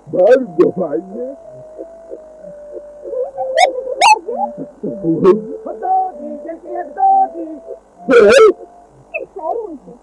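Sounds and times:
person speaking: 0:00.0 - 0:10.0
cartoon soundtrack held tone: 0:00.2 - 0:09.9.

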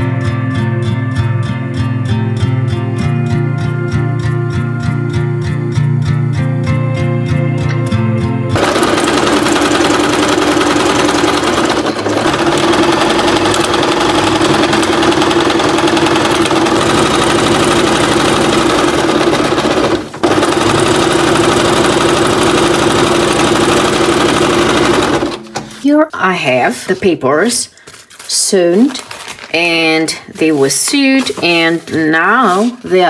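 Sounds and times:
strummed guitar music: 0:00.0 - 0:14.8
sewing machine stitching: 0:08.6 - 0:25.6.

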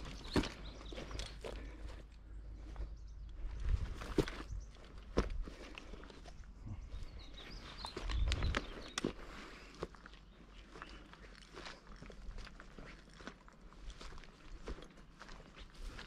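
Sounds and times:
footsteps through dry grass: 0:00.0 - 0:16.0.

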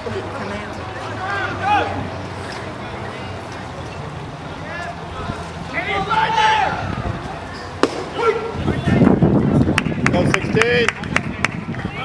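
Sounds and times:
bat cracking baseball: 0:07.8 - 0:08.5.

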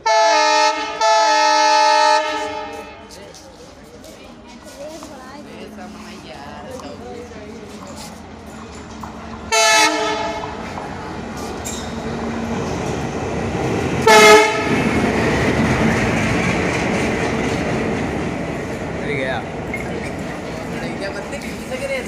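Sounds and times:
train horn blasts: 0:00.0 - 0:03.1, 0:09.5 - 0:10.6, 0:14.0 - 0:14.8
diesel locomotive passing: 0:00.0 - 0:22.0.

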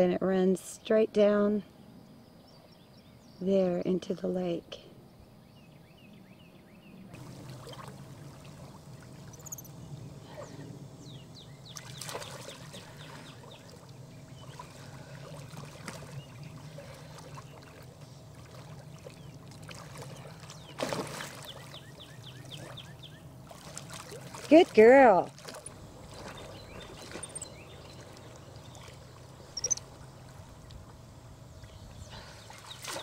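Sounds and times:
birds chirping: 0:05.0 - 0:23.9, 0:24.5 - 0:33.0
water splashing and lapping: 0:07.2 - 0:10.8, 0:11.7 - 0:33.0.

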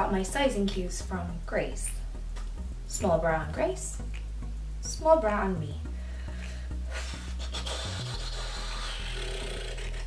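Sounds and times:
low background music: 0:00.0 - 0:10.0.

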